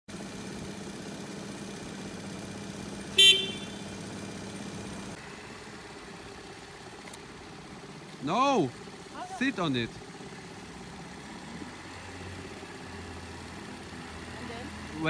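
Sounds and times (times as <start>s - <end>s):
scooter horn beep: 3.1s - 4.0s.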